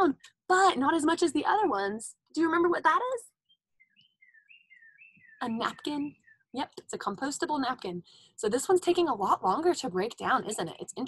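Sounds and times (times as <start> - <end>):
small bird chirping: 3.3 - 6.9.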